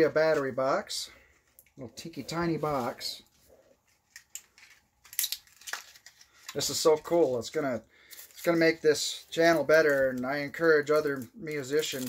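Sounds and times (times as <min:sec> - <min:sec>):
packaging crinkling and rustling: 0:02.4 - 0:12.0.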